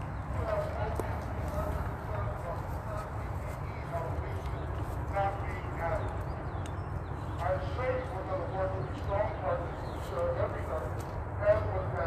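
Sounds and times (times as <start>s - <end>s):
outdoor crowd: 0.0s - 12.0s
speaker over loudspeaker: 0.0s - 12.0s.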